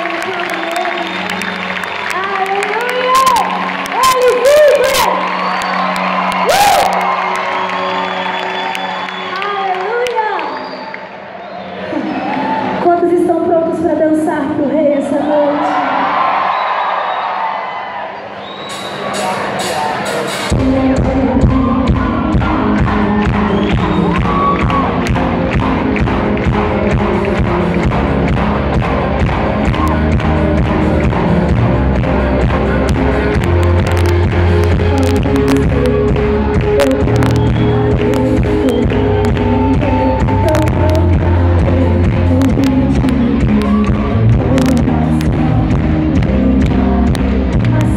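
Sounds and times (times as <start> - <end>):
crowd voices: 17.1 - 47.9
drums: 18.6 - 47.9
person singing: 19.6 - 47.9
bass guitar: 20.5 - 47.9.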